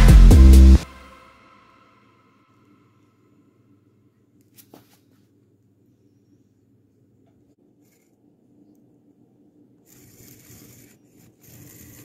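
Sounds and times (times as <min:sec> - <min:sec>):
soft rustling and scraping: 0:04.5 - 0:05.4.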